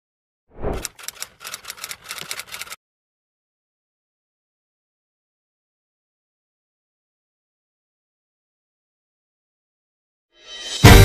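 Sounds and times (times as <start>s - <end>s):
typewriter key clacks: 0.8s - 2.8s.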